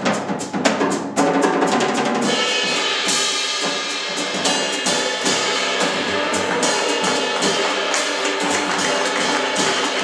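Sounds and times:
live jazz band: 0.0s - 10.0s
cymbal strokes: 2.3s - 10.0s.

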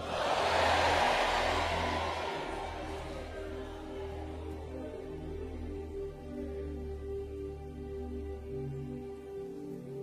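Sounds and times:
congregation shouting together: 0.0s - 4.6s.

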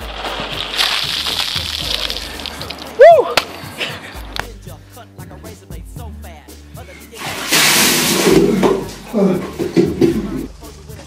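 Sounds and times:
water rushing and splashing: 0.0s - 3.7s, 7.2s - 10.1s
person crying out: 3.0s - 3.4s.

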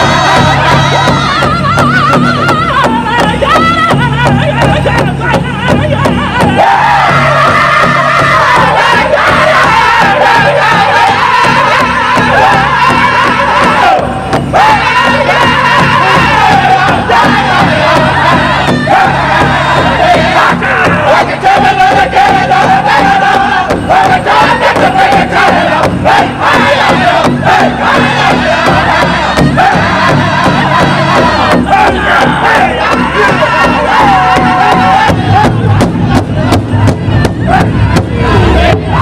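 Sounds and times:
large hand drum beating: 0.0s - 39.0s
men singing in high voices: 0.0s - 39.0s.

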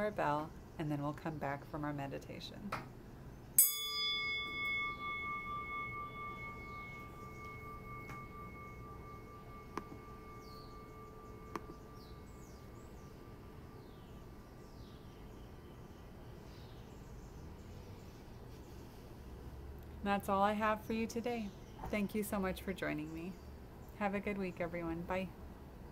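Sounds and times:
meditation bell ringing: 3.6s - 15.0s.

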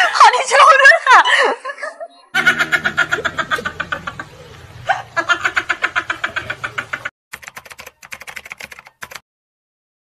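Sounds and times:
man laughing hard: 2.4s - 7.1s.

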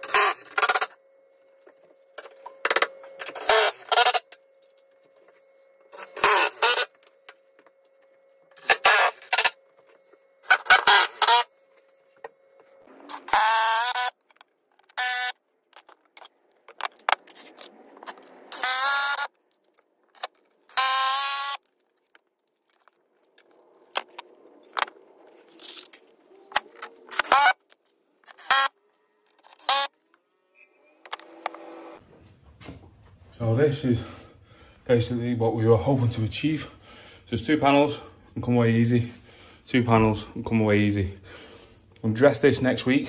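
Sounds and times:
cordless power tool whining: 3.2s - 4.3s, 5.9s - 7.0s, 8.6s - 9.6s, 10.4s - 11.5s, 13.1s - 14.2s, 14.9s - 15.4s, 18.5s - 19.3s, 20.7s - 21.6s.

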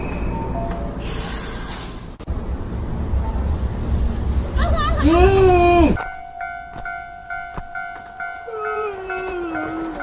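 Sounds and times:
level crossing warning bell: 6.0s - 10.0s
slowly falling wail: 8.4s - 10.0s.

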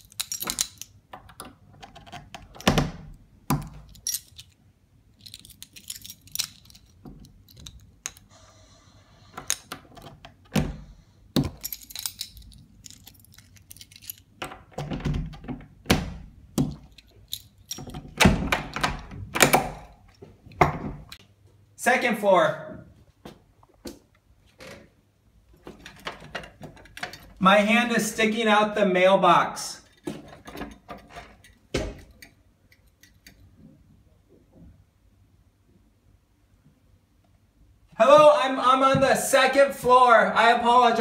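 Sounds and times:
door lock rattling and clunking: 0.2s - 4.4s, 9.5s - 19.9s.

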